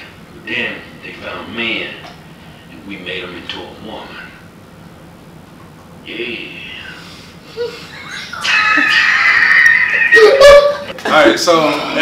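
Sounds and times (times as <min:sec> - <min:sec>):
man shrieking laughter: 0:07.6 - 0:10.9.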